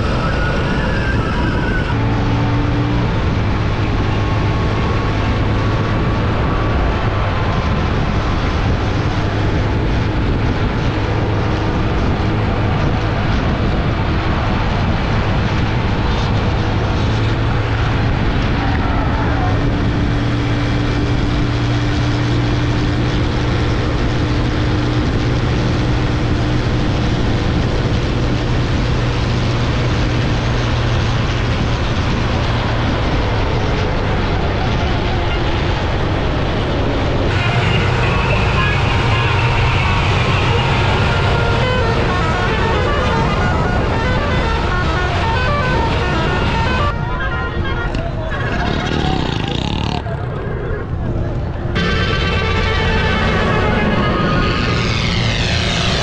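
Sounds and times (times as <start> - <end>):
tractor diesel engines running: 0.0 - 56.0
wind: 0.0 - 56.0
crowd voices: 34.3 - 56.0.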